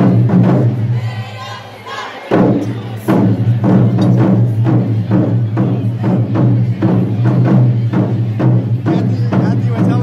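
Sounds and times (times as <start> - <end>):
taiko drums playing: 0.0 - 1.1, 2.3 - 10.0.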